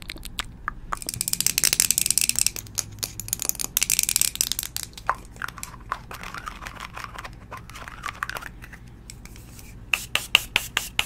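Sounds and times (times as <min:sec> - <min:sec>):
plastic containers crackling and clicking: 0:00.0 - 0:09.3.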